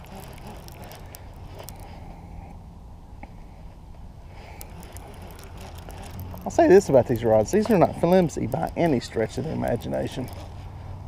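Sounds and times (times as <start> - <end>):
fishing reel cranked by hand: 0.0 - 2.2, 4.3 - 11.0
steady low hum: 0.0 - 11.0.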